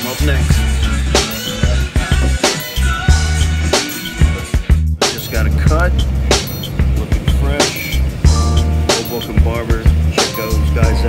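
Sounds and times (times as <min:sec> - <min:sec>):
person singing: 0:00.0 - 0:04.6
music with heavy bass: 0:00.0 - 0:11.0.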